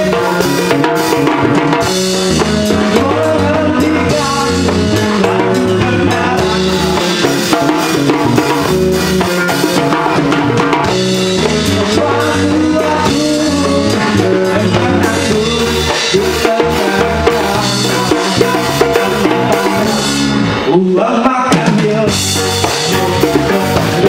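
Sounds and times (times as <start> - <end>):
drum kit beat: 0.0 - 24.0
live rock band playing: 0.0 - 24.0.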